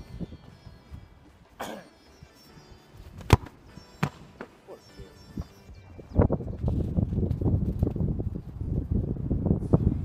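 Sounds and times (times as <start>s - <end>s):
football kicked thud: 3.2s - 4.5s.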